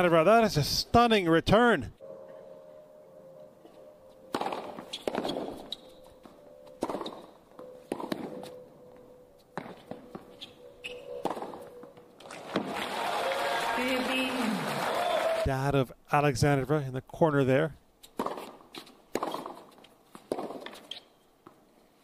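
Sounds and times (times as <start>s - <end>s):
racket striking tennis ball: 4.3s - 5.9s, 6.7s - 8.5s, 9.6s - 12.7s, 18.0s - 21.0s
crowd applause: 12.2s - 15.6s.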